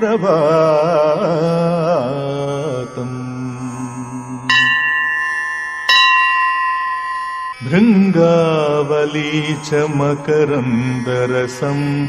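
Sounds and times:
devotional song music: 0.0 - 12.0
bell ringing: 4.5 - 9.5.

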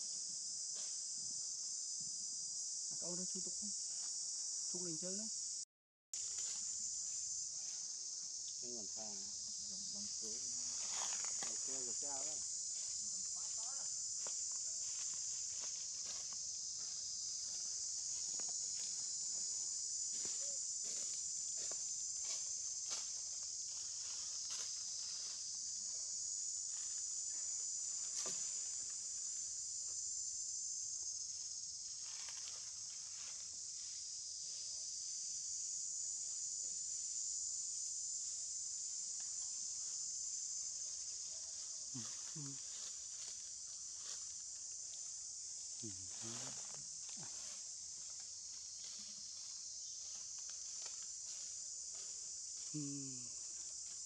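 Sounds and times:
insects droning: 0.0 - 54.0.

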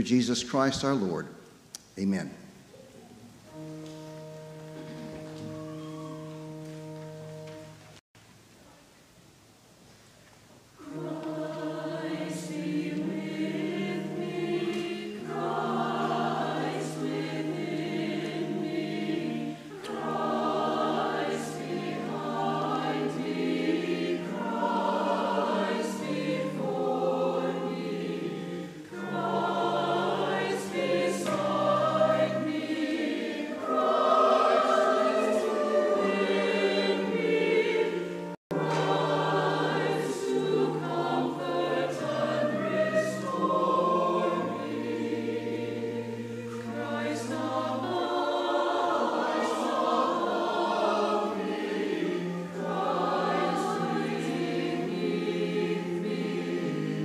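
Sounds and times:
choir singing: 3.2 - 8.0, 10.8 - 57.0.

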